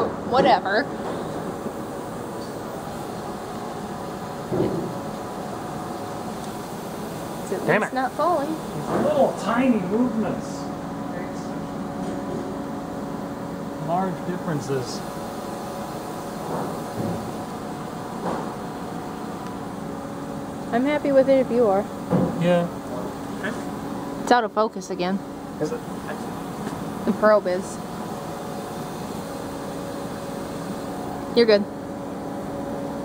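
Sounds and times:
machinery hum: 0:00.0 - 0:33.0.

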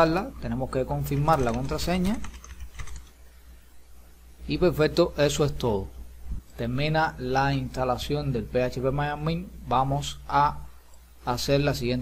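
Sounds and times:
low steady hum: 0:00.0 - 0:12.0
keyboard typing: 0:01.1 - 0:03.2.

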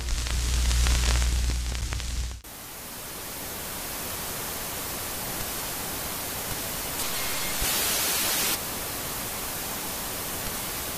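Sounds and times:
tv static hiss: 0:00.0 - 0:10.9.

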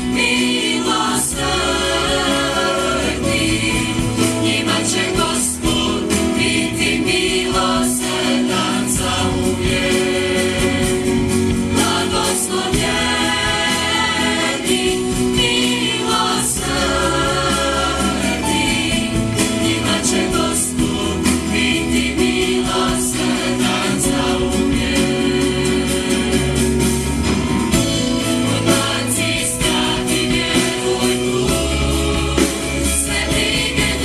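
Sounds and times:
mixed choir singing a hymn: 0:00.0 - 0:34.0.

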